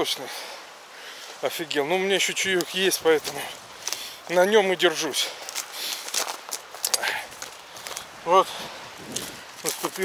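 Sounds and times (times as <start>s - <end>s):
footsteps crunching on stony ground: 1.2s - 10.0s.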